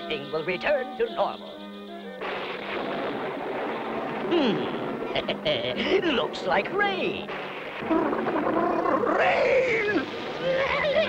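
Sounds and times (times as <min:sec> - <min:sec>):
cartoon thunder rumble: 0:07.8 - 0:11.0.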